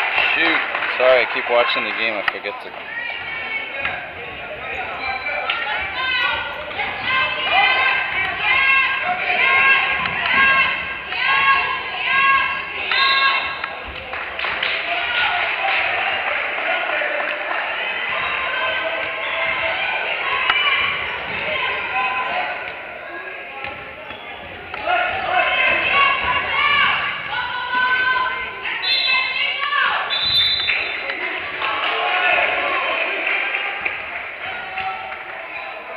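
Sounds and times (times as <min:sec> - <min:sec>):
people calling out echoing: 0:00.0 - 0:35.9.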